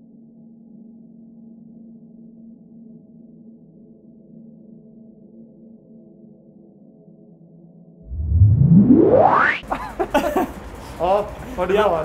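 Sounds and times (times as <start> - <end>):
rising whoosh sound effect: 8.0 - 9.6
man laughing: 9.7 - 10.5.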